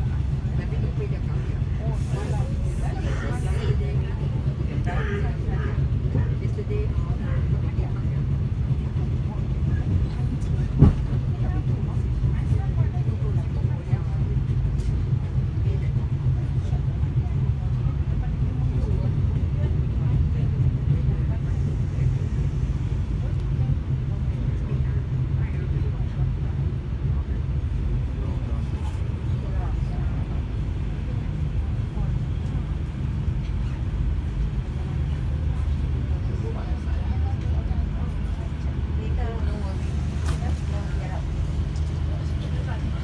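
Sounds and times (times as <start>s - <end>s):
train rumbling: 0.0s - 43.0s.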